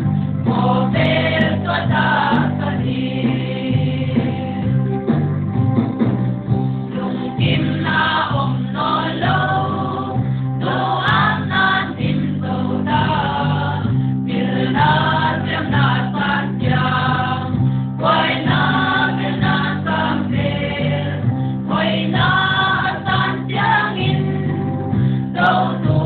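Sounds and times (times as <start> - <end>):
choir singing gospel song: 0.0 - 5.0, 6.9 - 26.0
sustained instrumental accompaniment: 0.0 - 26.0.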